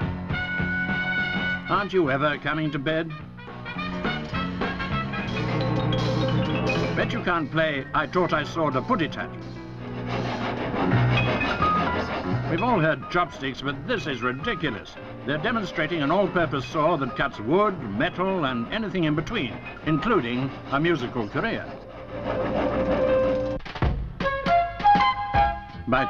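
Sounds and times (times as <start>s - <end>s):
piano notes: 3.7s - 17.5s
musical saw note: 4.0s - 7.9s
saw scraping wood: 6.6s - 23.6s.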